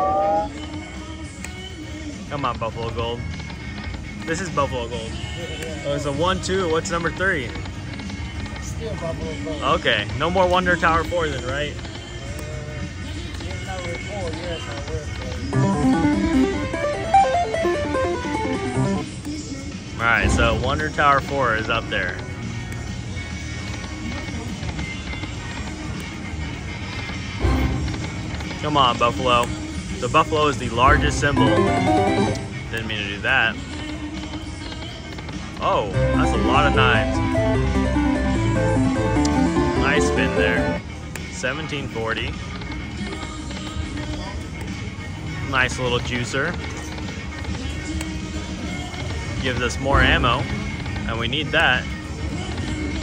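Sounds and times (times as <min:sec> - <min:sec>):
casino crowd hubbub: 0:03.8 - 0:53.0
casino floor din: 0:15.5 - 0:19.0, 0:31.0 - 0:32.8
slot machine reels spinning: 0:15.5 - 0:19.0, 0:31.0 - 0:32.6, 0:35.9 - 0:40.8
slot machine game music: 0:15.5 - 0:19.1, 0:20.1 - 0:21.0, 0:30.9 - 0:32.8, 0:35.8 - 0:40.8.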